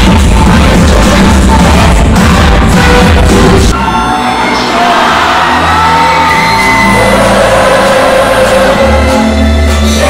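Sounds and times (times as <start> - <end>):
pop music over loudspeakers: 0.0 - 10.0
fans shouting and whooping: 2.9 - 9.1.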